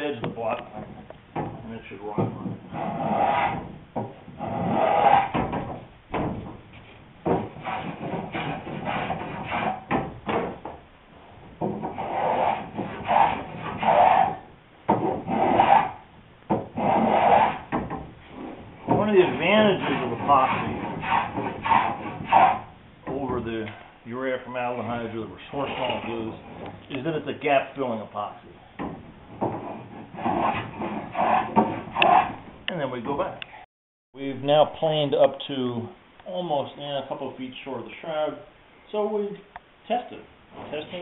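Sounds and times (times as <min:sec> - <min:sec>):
hand plane rasping on wood: 0:02.7 - 0:03.7, 0:04.4 - 0:05.4, 0:07.6 - 0:09.9, 0:11.9 - 0:14.4, 0:15.1 - 0:16.0, 0:16.8 - 0:17.7, 0:19.3 - 0:22.7, 0:29.6 - 0:32.4.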